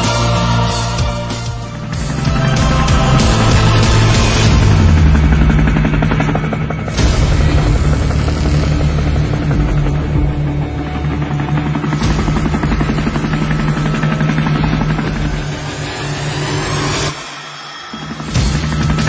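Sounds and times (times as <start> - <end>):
background music with low drone: 0.0 - 19.0
sharp hit: 1.9 - 19.0.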